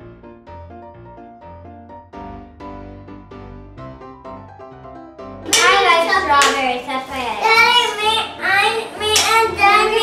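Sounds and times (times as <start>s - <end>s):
soft piano music: 0.0s - 10.0s
child's high voice: 5.6s - 10.0s.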